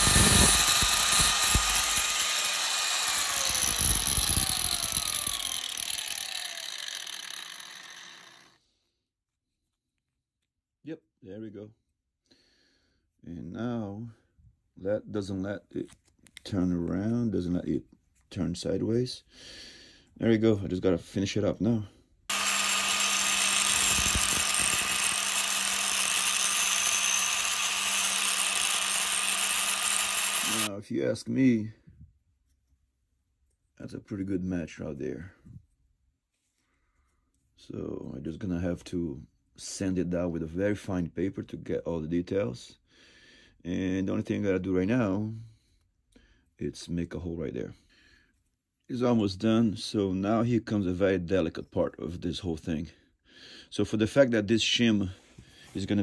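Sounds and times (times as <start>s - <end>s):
angle grinder cutting metal: 0.0s - 8.5s, 22.3s - 30.7s.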